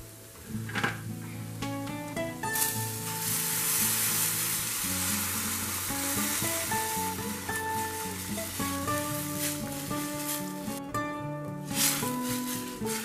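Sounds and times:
hissing sizzle: 0.0s - 13.0s
water pouring into hot pan: 2.4s - 11.0s, 11.6s - 13.0s.

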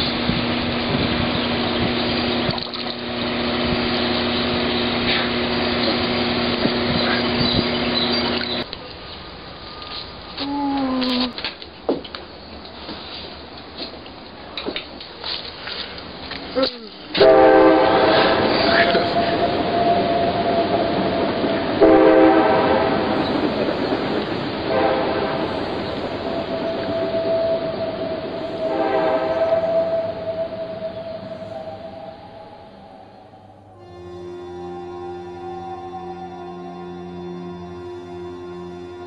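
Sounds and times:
passing train noise: 0.0s - 10.5s, 11.2s - 39.0s
train horn blasts: 17.1s - 39.0s
steady tone: 17.2s - 39.0s.

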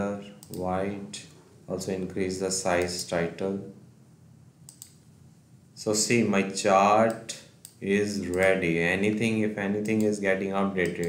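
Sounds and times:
computer mouse clicks: 0.4s - 0.7s, 4.6s - 5.1s, 7.0s - 8.6s, 9.8s - 10.2s, 10.8s - 11.0s.

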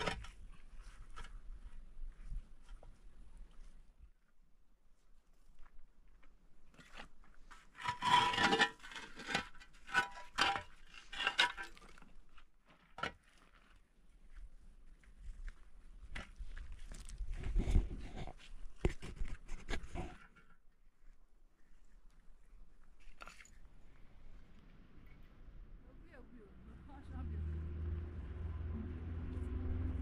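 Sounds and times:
scraping on stone and gravel: 6.6s - 14.0s, 16.1s - 20.6s.

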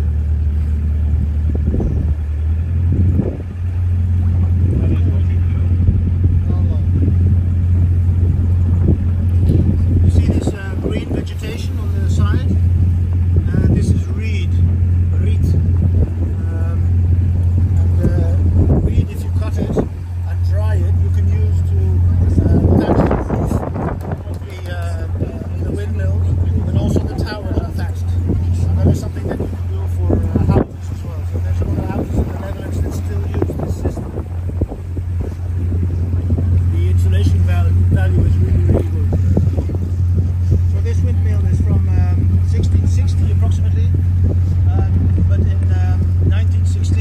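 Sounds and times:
motorboat engine drone: 0.0s - 47.0s.

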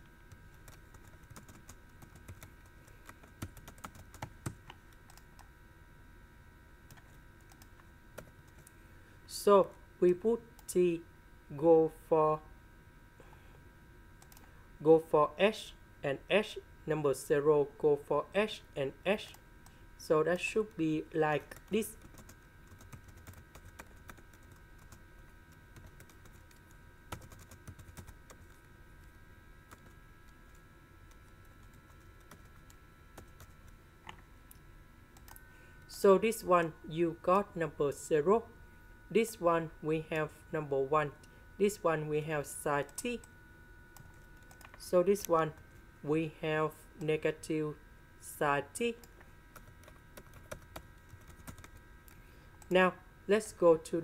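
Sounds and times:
faint steady hum: 0.0s - 54.0s
faint keyboard typing: 0.3s - 5.5s, 6.8s - 8.7s, 14.2s - 14.5s, 21.4s - 34.6s, 35.2s - 35.4s, 43.9s - 45.8s, 49.0s - 52.7s.

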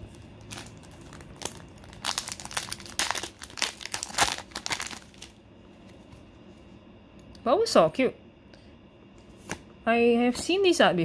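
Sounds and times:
foil wrapper tearing and crinkling: 0.0s - 5.4s.

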